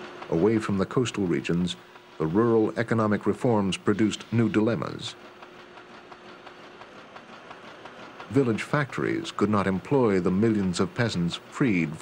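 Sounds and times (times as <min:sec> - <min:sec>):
mechanical clatter with fine clicking: 0:00.0 - 0:12.0.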